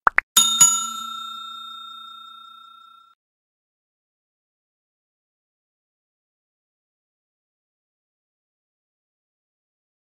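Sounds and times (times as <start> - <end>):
notification bell chime: 0.4 - 3.2.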